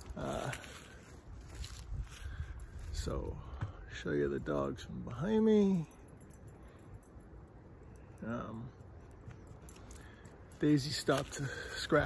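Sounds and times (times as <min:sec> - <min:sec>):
low wind rumble on microphone: 0:01.2 - 0:03.8.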